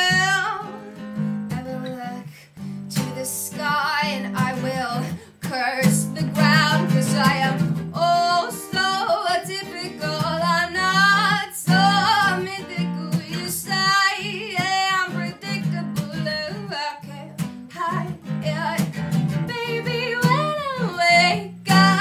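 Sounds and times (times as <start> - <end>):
acoustic guitar strumming: 0.0 - 22.0
woman singing: 0.0 - 22.0.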